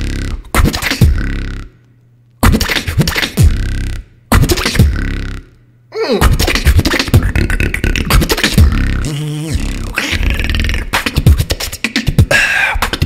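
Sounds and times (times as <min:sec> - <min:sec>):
beatboxing into a microphone: 0:00.0 - 0:13.0.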